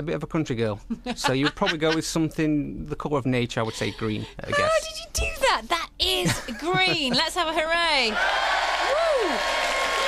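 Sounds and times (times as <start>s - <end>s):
crowd cheering and applause: 8.1s - 10.0s.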